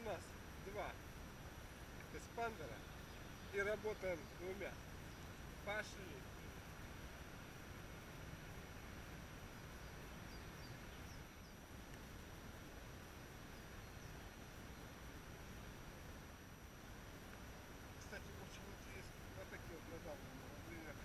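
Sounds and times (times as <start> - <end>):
low outdoor hiss: 0.0 - 21.0
faint bird chirps: 2.4 - 5.8, 9.4 - 11.6, 13.4 - 15.0.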